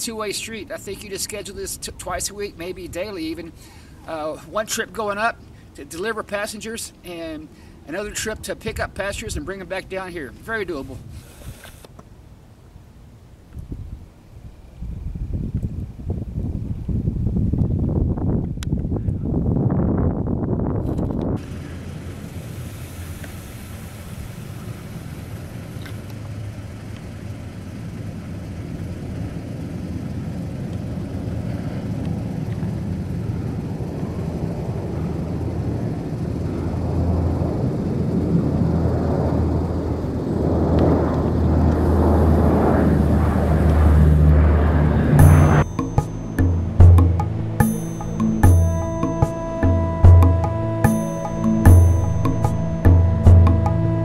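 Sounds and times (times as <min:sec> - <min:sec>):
turboprop aircraft drone: 0:21.4 - 0:54.0
loud rushing noise: 0:40.4 - 0:54.0.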